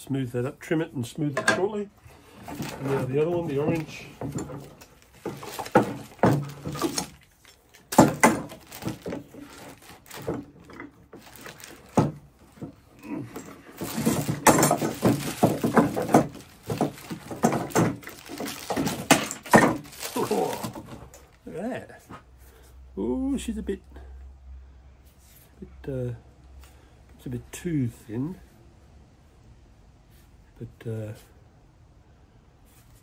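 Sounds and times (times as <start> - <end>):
wooden knocks: 2.4 - 7.2, 7.9 - 21.2
metallic clicks and rattles of clamps: 2.4 - 19.9.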